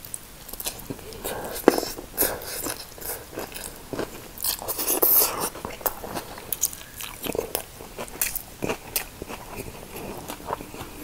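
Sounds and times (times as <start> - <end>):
close chewing: 0.5 - 11.0.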